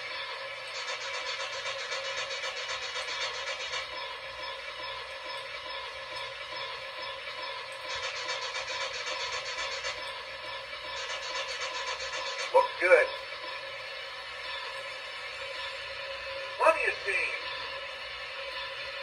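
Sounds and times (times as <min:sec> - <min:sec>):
model steam locomotive hissing: 0:00.0 - 0:19.0.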